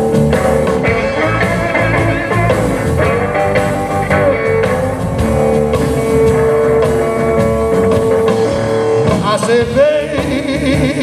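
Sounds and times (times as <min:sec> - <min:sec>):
bass and drums: 0:00.0 - 0:11.0.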